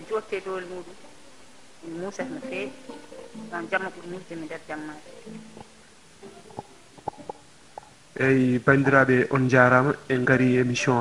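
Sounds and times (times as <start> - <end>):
microphone handling clicks and bumps: 6.4 - 8.0.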